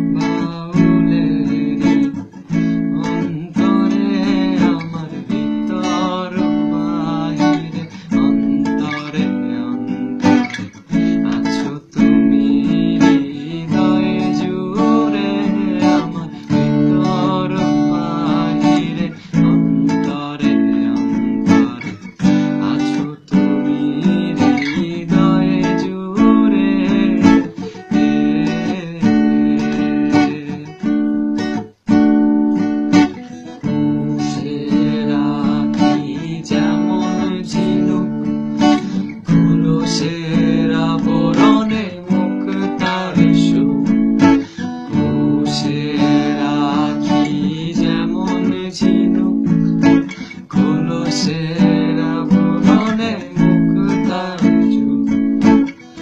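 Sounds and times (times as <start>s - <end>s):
man singing: 0.0s - 31.6s, 32.9s - 56.0s
acoustic guitar strumming: 0.0s - 56.0s.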